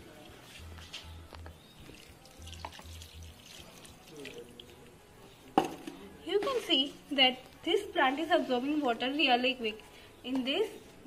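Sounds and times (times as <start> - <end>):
water trickling onto soil: 1.8 - 5.0.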